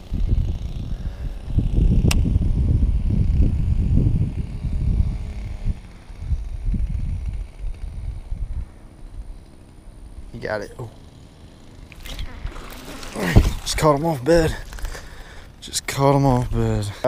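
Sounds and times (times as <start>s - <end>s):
wind buffeting microphone: 0.0s - 10.4s, 12.0s - 17.0s.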